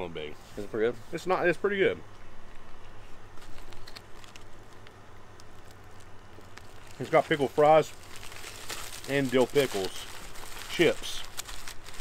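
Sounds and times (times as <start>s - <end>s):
foil wrapper crinkling: 3.3s - 12.0s.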